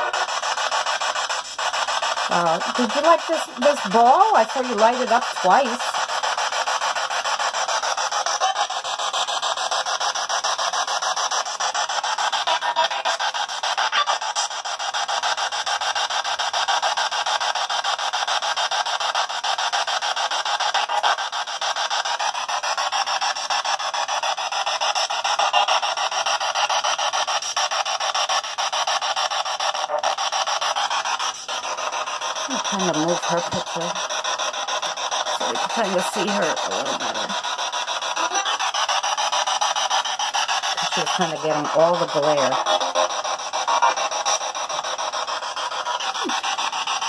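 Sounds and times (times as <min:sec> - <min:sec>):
radio static sweeping: 0:00.0 - 0:06.0, 0:31.1 - 0:34.2, 0:35.3 - 0:39.2, 0:40.7 - 0:47.0.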